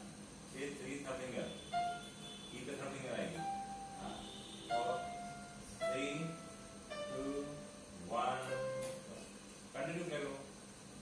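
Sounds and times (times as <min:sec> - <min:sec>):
electronic keyboard notes: 0:01.7 - 0:09.2.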